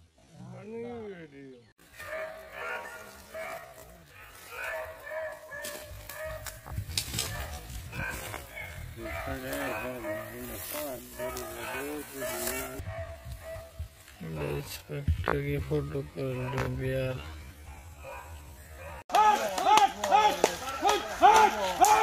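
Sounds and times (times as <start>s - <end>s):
rustles and clicks: 3.2s - 14.2s.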